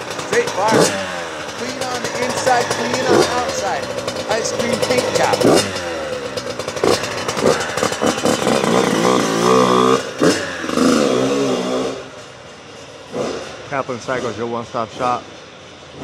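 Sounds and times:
two-stroke engine revving: 0.0s - 16.0s.

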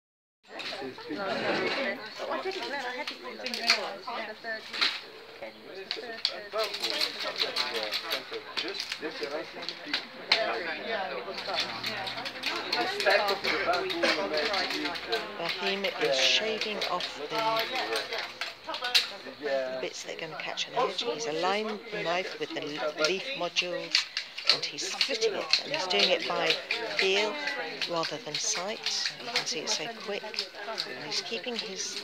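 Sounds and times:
people talking: 5.8s - 18.8s, 19.4s - 32.0s.

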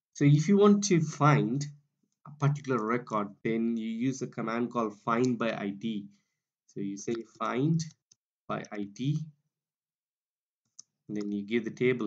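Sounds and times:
person speaking: 2.3s - 6.1s, 6.8s - 9.3s, 11.1s - 12.0s.

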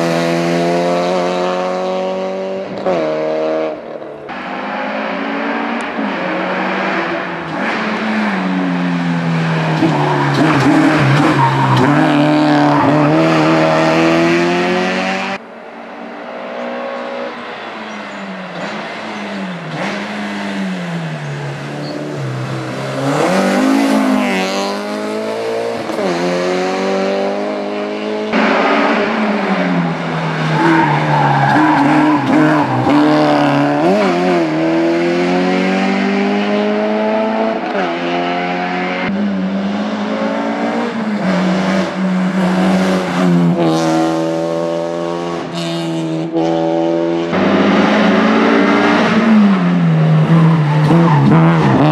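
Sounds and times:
race car engine revving past: 18.5s - 51.9s.

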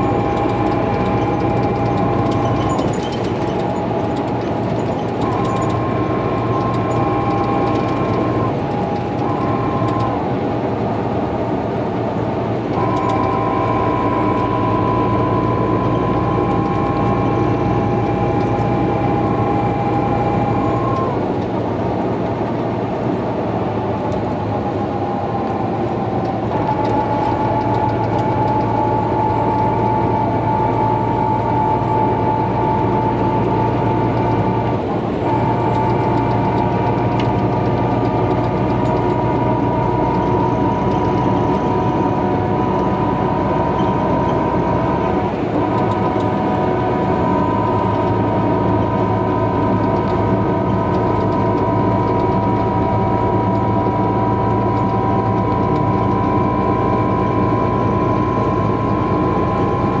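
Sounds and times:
diesel engine drone: 0.0s - 60.0s
high transmission whine: 0.0s - 60.0s
road noise: 0.0s - 60.0s.

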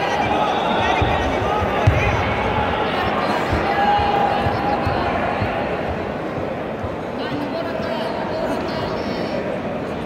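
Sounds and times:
echoing crowd voices: 0.0s - 10.0s.

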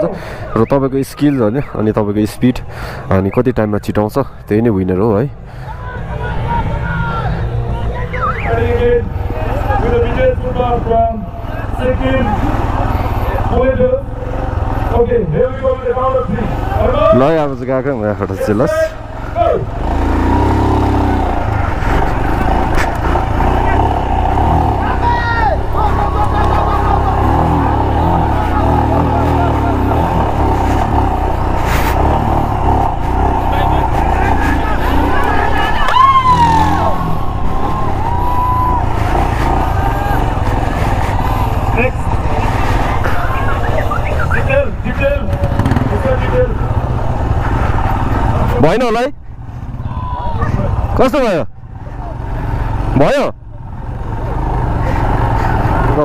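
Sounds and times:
voices shouting: 5.6s - 14.9s, 18.3s - 48.6s, 49.7s - 51.3s
motorcycle engine running: 8.2s - 17.2s, 18.4s - 51.0s, 51.6s - 56.0s.

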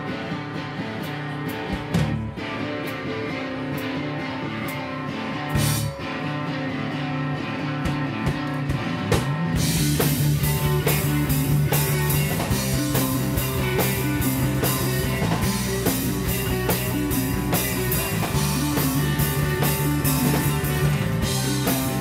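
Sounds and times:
bass guitar: 0.0s - 22.0s
drum kit: 0.0s - 22.0s
electric guitars: 0.0s - 22.0s.

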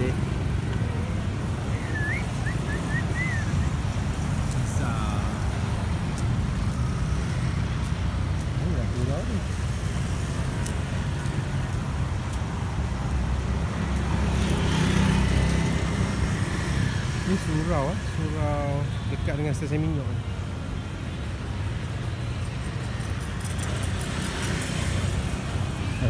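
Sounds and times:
hum of street traffic: 0.0s - 26.0s
vehicle passing: 12.4s - 17.5s.

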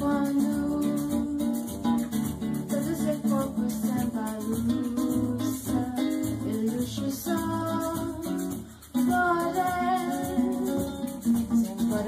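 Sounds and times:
acoustic guitar strumming: 0.0s - 12.0s
person singing: 0.0s - 12.0s
shaker rhythm: 0.0s - 12.0s.

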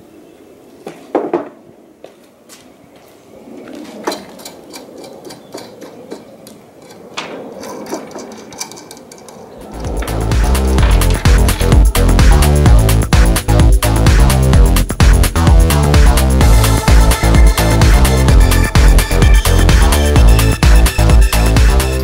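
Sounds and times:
handling and rubbing noise: 2.2s - 12.3s
electronic music: 9.7s - 22.0s.

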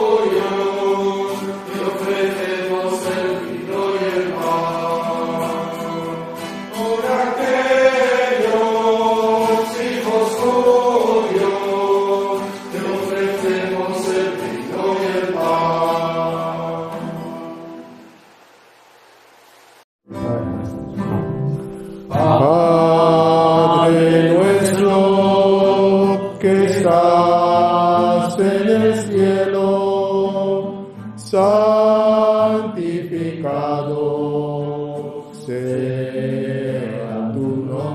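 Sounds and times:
voices singing a slow hymn: 0.0s - 18.1s, 22.0s - 37.9s.

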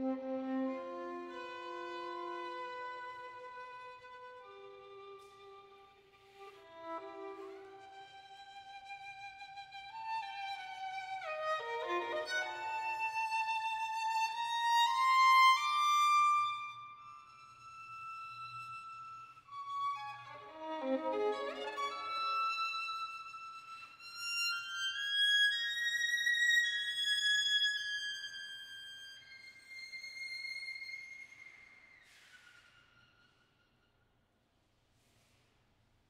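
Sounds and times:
solo violin playing: 0.0s - 33.1s.

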